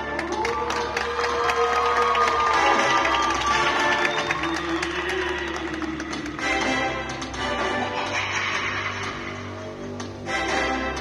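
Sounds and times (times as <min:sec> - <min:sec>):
audience cheering and clapping: 0:00.0 - 0:09.5
stage performance music: 0:00.0 - 0:11.0.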